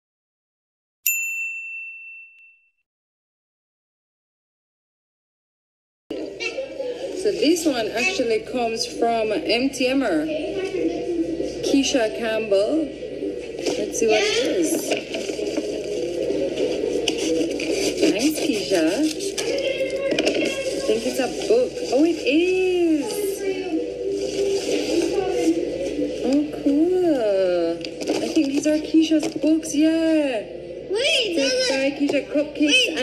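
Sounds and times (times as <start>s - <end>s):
bell ding: 1.1s - 2.8s
paper scraping and crinkling: 14.7s - 22.2s, 27.8s - 29.4s.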